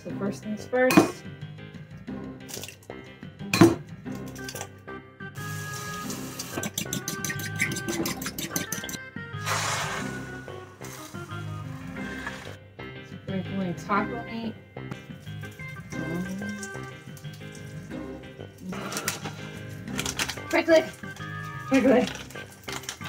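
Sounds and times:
eggs cracked on a bowl rim: 2.5 - 2.8, 6.5 - 9.0
fork whisking eggs in a bowl: 6.4 - 9.0
eggs hissing in a hot pan: 9.4 - 12.5.

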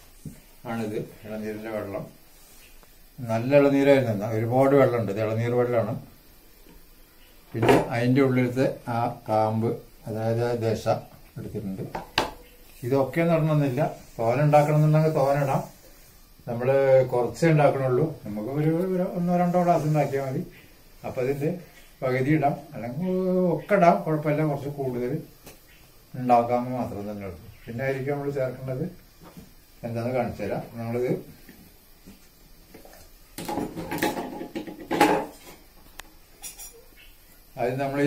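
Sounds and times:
man speaking: 12.8 - 15.8.

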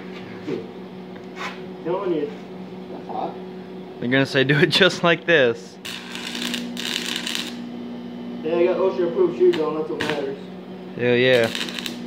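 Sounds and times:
steady low hum: 0.0 - 12.0
arc welding crackling and sizzling: 4.7 - 12.0.

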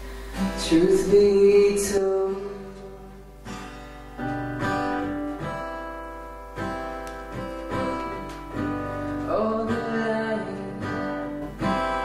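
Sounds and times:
acoustic guitar chords ringing: 0.0 - 12.0
person singing: 0.4 - 3.3, 7.7 - 12.0.

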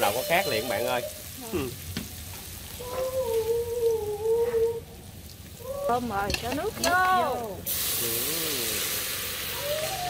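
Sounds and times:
shallots sizzling in oil: 0.0 - 4.2, 4.9 - 10.0.

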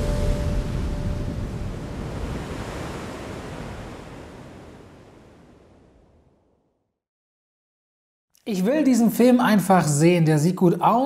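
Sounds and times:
held music chord: 0.0 - 1.8
ocean waves breaking: 0.0 - 6.6.

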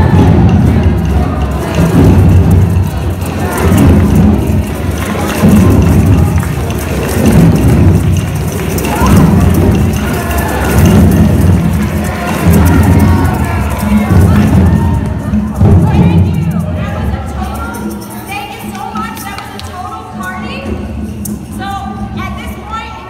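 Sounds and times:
group playing hand drums: 0.0 - 22.7
voices: 0.0 - 23.0.

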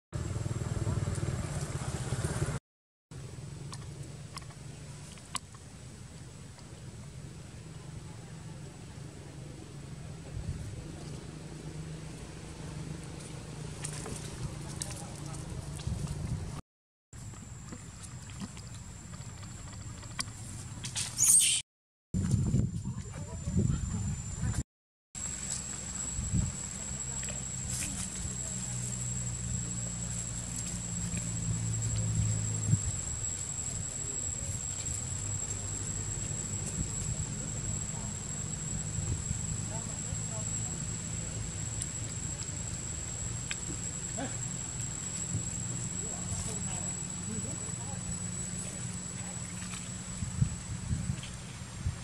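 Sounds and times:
motorcycle engine running: 0.2 - 2.6, 25.2 - 51.6.

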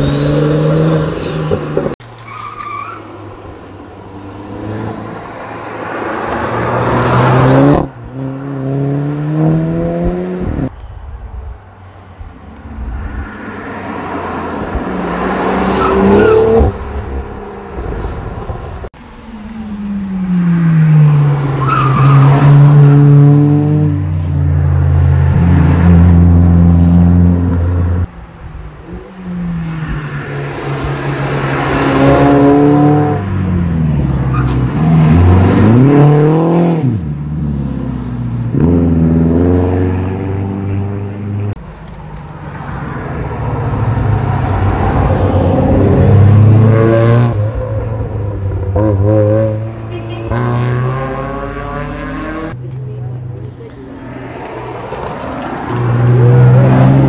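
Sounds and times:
cars revving past: 4.1 - 10.7, 13.0 - 18.9, 19.6 - 41.6, 42.2 - 57.0.

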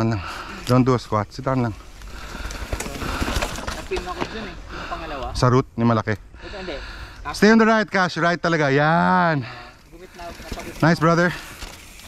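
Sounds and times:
voices: 0.0 - 11.8
mountain bike rolling on dirt: 0.2 - 5.3, 7.7 - 12.0.

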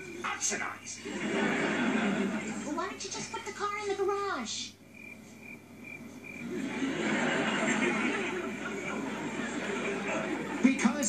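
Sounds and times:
studio audience laughing: 1.0 - 2.7, 6.4 - 11.0.

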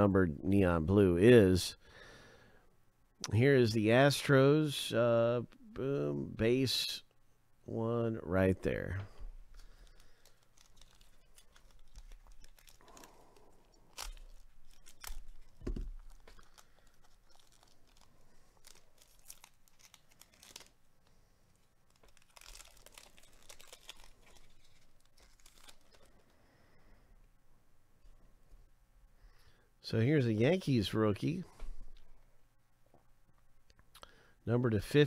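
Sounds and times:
wrapper tearing and crinkling: 9.5 - 26.3.

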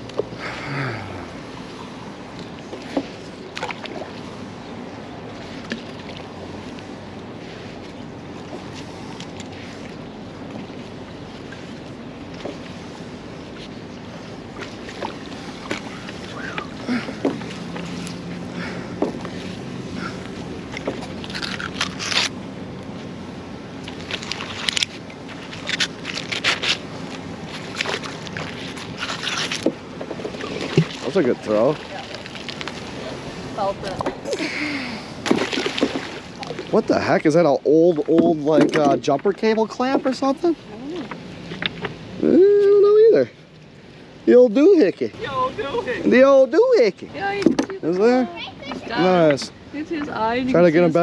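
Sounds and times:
rope scrapes and clicks: 23.9 - 29.7.

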